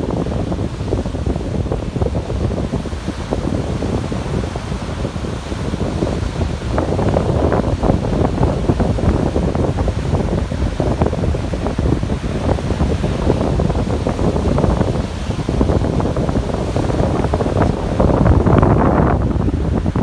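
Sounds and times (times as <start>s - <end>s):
ocean surf breaking: 0.0s - 20.0s
wind buffeting microphone: 0.0s - 20.0s.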